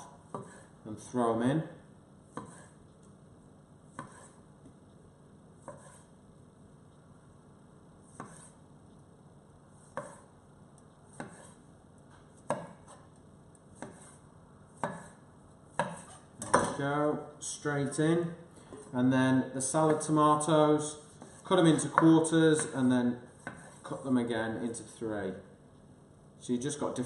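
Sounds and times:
knife hitting wooden board: 15.8 - 16.8.

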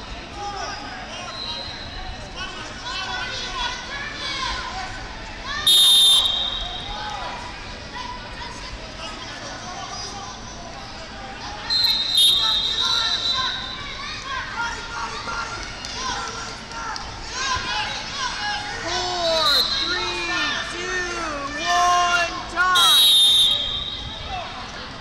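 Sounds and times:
voices chattering: 0.0 - 25.0
referee's whistle blast: 5.7 - 7.0, 11.7 - 13.8, 22.8 - 24.3.

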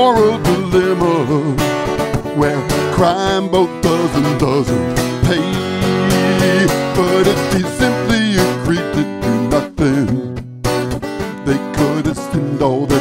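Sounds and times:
man singing: 0.0 - 10.4, 11.4 - 13.0
strummed acoustic guitar: 0.0 - 13.0.

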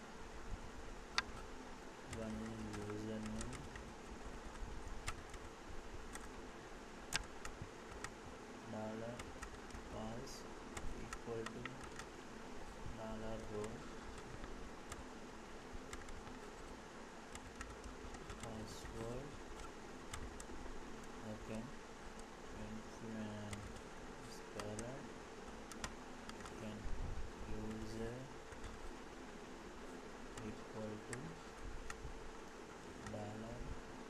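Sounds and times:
steady buzzing hum: 0.0 - 34.0.

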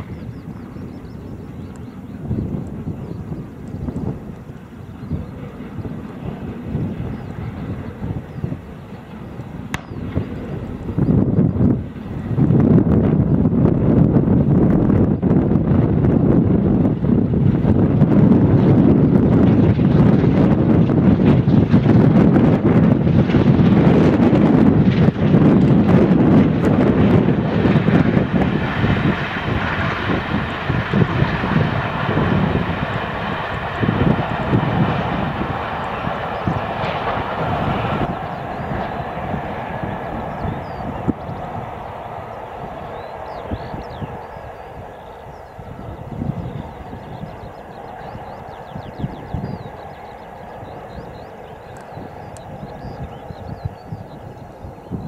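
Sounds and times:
wind buffeting microphone: 0.0 - 55.0
steam train running at speed: 15.4 - 55.0.

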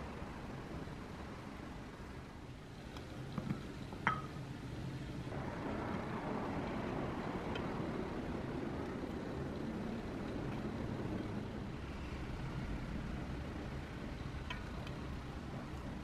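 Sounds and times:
low rumbling noise: 0.0 - 16.0.

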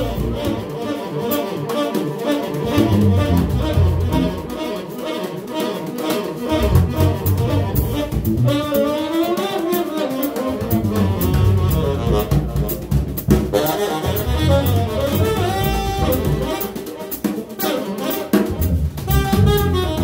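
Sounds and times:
electric bass: 0.0 - 0.7, 2.6 - 4.6, 6.5 - 8.7, 10.6 - 16.7, 18.5 - 20.0
tenor saxophone melody: 0.0 - 20.0.

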